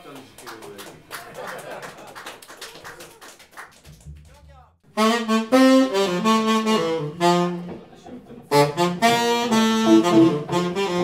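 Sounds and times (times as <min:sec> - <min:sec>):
tenor saxophone jazz phrase: 0:08.5 - 0:11.0
low bass note: 0:09.9 - 0:10.8.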